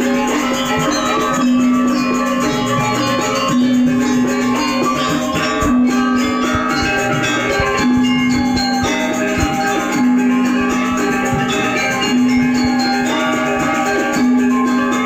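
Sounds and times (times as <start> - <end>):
metallophones ringing melody: 0.0 - 15.0.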